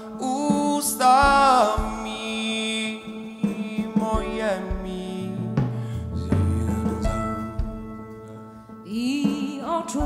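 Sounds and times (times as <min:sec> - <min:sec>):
live band playing ballad: 0:00.0 - 0:10.0.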